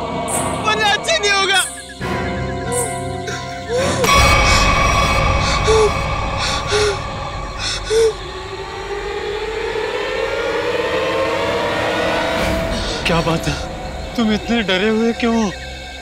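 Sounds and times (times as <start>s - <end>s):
suspense score drones: 0.0s - 16.0s.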